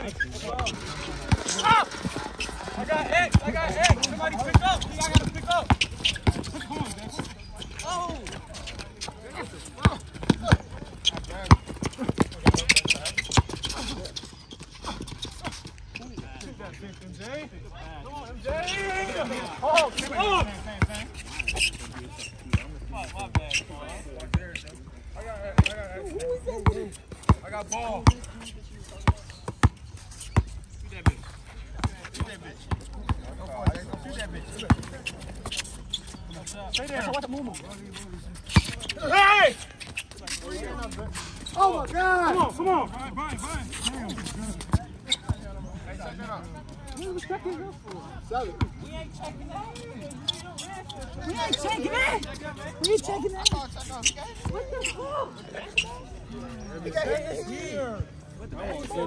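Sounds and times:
players shouting: 0:00.5 - 0:05.8, 0:18.4 - 0:21.0, 0:38.8 - 0:39.7
basketball bouncing on asphalt: 0:03.2 - 0:07.3, 0:09.8 - 0:13.6.

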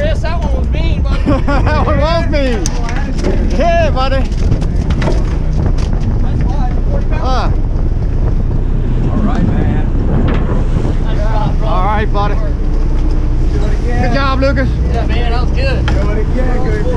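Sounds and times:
men calling excitedly: 0:00.0 - 0:04.4, 0:13.4 - 0:16.9
boat engine running: 0:00.0 - 0:16.9
wind rumble on microphone: 0:00.0 - 0:16.9.

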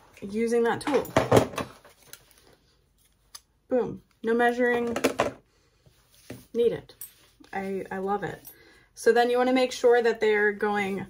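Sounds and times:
things clattering on a work table: 0:00.8 - 0:02.0, 0:04.8 - 0:05.4.

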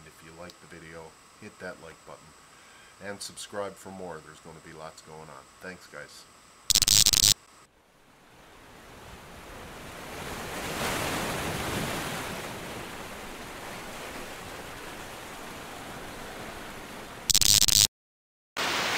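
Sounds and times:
loud burst of static: 0:06.7 - 0:07.4, 0:17.3 - 0:17.9, 0:18.6 - 0:18.9.

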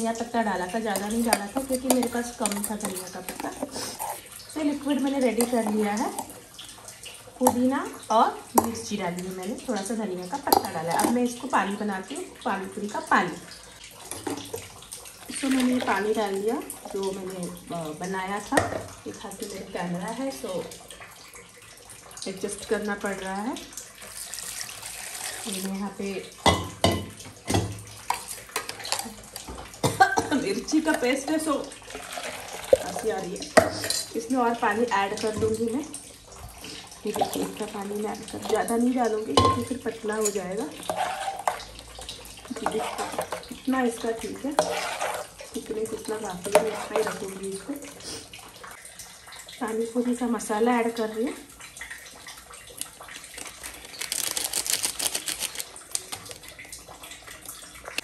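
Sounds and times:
liquid sloshing in a jar: 0:00.0 - 0:11.7, 0:13.7 - 0:18.0, 0:20.3 - 0:49.6, 0:51.4 - 0:58.0
foil packet crinkling: 0:52.8 - 0:56.8.

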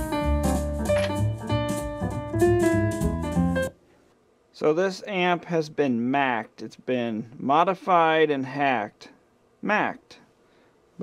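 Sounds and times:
piano jazz with drums: 0:00.0 - 0:03.8.

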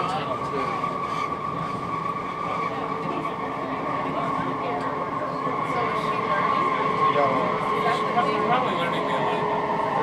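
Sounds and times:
train drive whine: 0:00.0 - 0:10.0
wheels rumbling on rail: 0:00.0 - 0:10.0.

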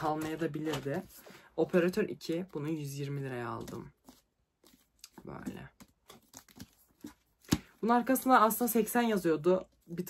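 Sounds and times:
book cover clicks and rustles: 0:00.0 - 0:01.2, 0:03.5 - 0:07.8.

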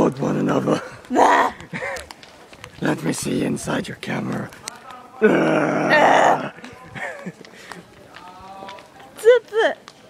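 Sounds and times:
faint voices talking: 0:02.3 - 0:10.0.

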